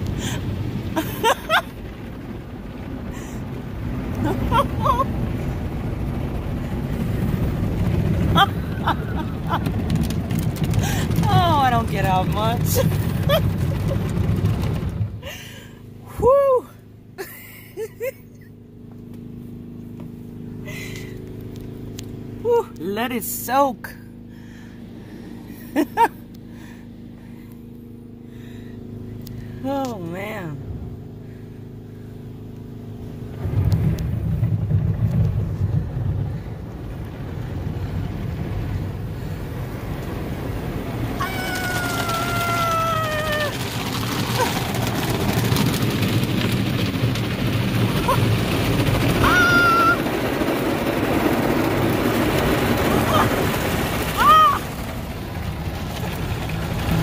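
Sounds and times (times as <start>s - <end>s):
car wash brushes and water: 0.0s - 57.0s
machine hum: 0.0s - 57.0s
woman exclaiming ahhh: 16.1s - 16.8s, 41.2s - 43.6s, 49.2s - 50.0s, 54.2s - 54.7s.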